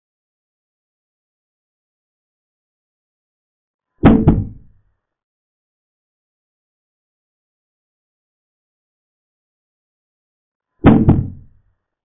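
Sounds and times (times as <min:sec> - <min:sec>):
quick knocks: 0:04.0 - 0:04.7.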